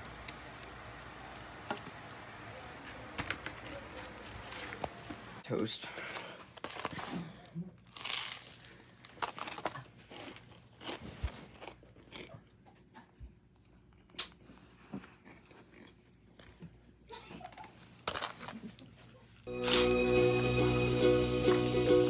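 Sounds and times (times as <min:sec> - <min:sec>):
crunching and chewing toast: 0:06.4 - 0:19.9.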